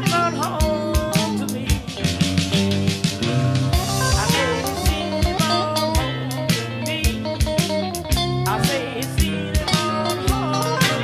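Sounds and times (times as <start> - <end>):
bass: 0.0 - 11.0
drums keeping a steady beat: 0.0 - 11.0
electric guitar lead lines: 0.0 - 11.0.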